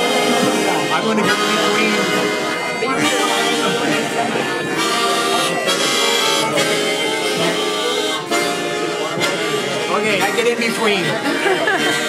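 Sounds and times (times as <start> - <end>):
harmonicas playing chords: 0.0 - 12.0.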